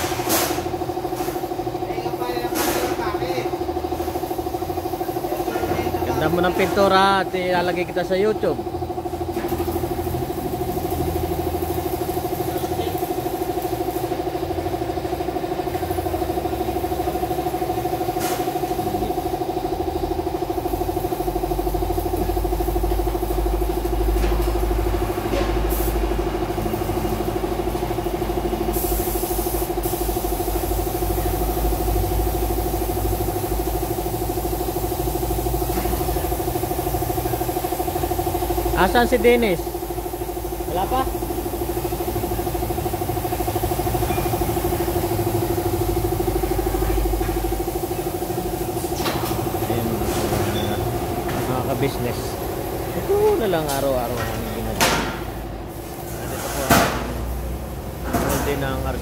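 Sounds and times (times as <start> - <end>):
machine motor humming: 3.0 - 28.7, 29.7 - 55.7.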